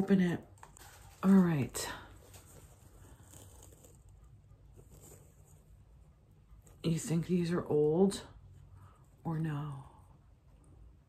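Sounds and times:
faint handling of plastic ornament: 0.0 - 10.1.

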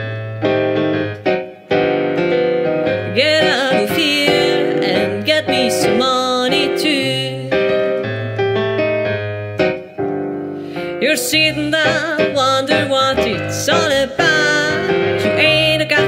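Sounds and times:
digital piano chords: 0.0 - 16.0
person singing with vibrato: 3.0 - 8.4, 10.8 - 16.0
bass line: 7.0 - 9.9.

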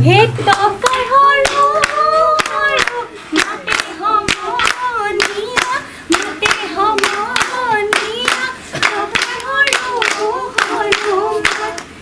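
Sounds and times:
women singing together: 0.0 - 12.0
steady hand claps: 0.5 - 12.0.

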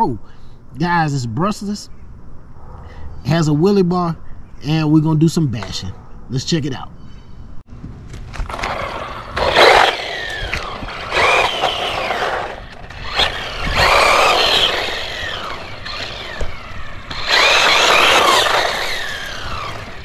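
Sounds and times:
tyre noise on asphalt: 7.7 - 20.0
rc truck motor whine: 8.3 - 20.0.

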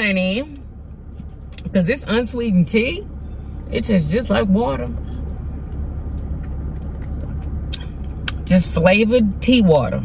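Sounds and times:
car idling: 0.0 - 10.0.

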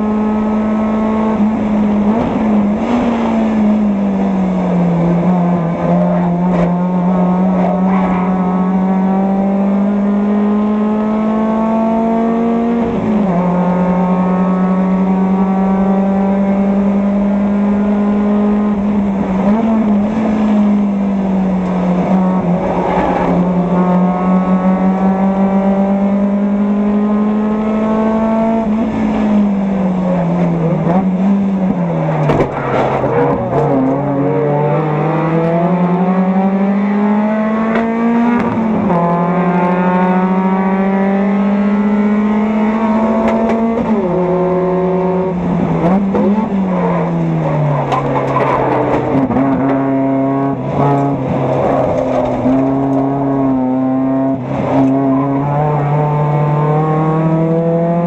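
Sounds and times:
race car engine at speed: 0.0 - 58.0.

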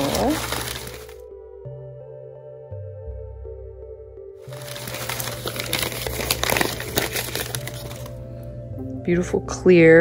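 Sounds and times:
packing paper crinkling: 0.0 - 1.2, 4.4 - 8.2
quiet background music: 0.0 - 10.0.

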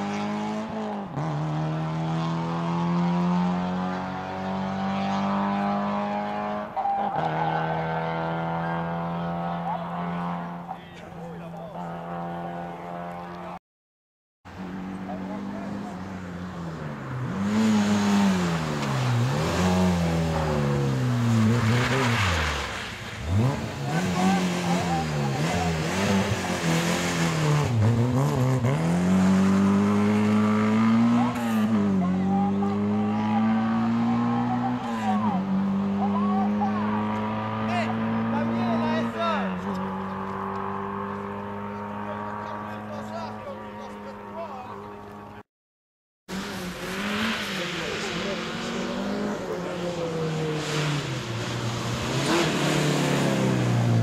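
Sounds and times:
rally car approaching: 0.0 - 13.6, 14.5 - 45.4, 46.3 - 54.0
rally car engine revving: 0.0 - 13.6, 14.5 - 45.4, 46.3 - 54.0.

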